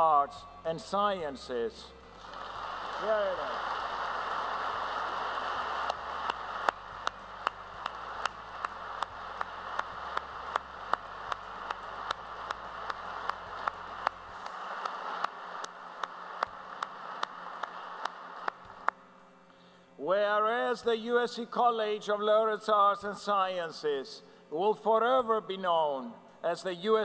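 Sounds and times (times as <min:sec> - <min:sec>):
audience applause: 0:02.2 - 0:18.9
sharp hand claps close by: 0:05.8 - 0:19.0.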